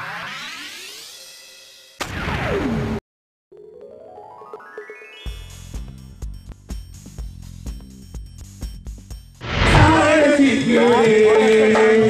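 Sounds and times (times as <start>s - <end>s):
falling sweep: 9.4s - 10.3s
drum and cymbal hit: 9.4s - 10.6s.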